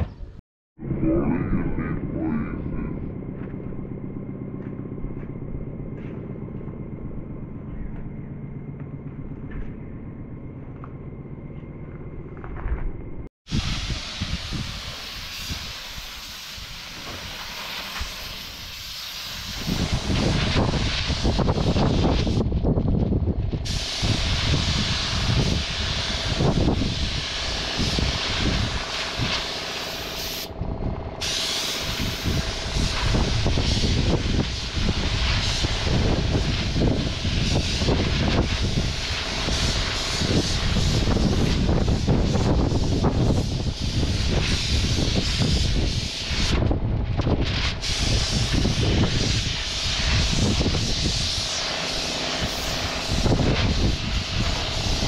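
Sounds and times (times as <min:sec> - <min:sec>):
low rumble: 0:00.0 - 0:13.9, 0:30.5 - 0:45.0
paint spray gun hissing: 0:13.5 - 0:22.4, 0:23.6 - 0:30.6, 0:31.2 - 0:46.6, 0:47.5 - 0:55.0.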